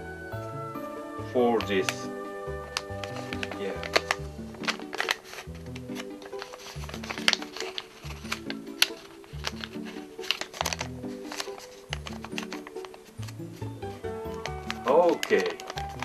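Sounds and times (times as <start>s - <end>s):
background music with low notes: 0.0s - 16.0s
paper crackling and creasing: 2.7s - 16.0s.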